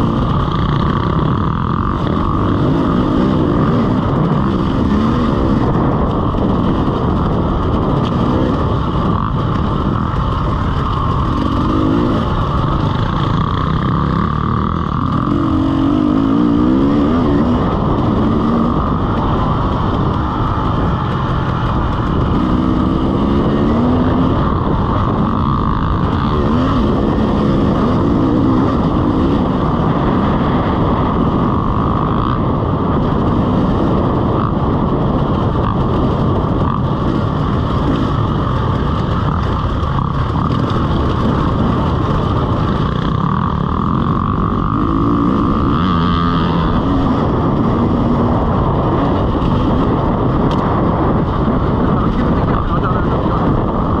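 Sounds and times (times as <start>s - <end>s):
two-stroke dirt bike engine: 0.0s - 54.0s
wind noise on microphone: 0.0s - 54.0s.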